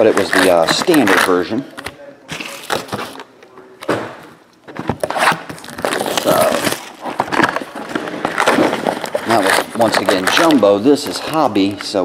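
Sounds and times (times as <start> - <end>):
foil wrappers crinkling: 0.0 - 3.3, 5.0 - 12.0.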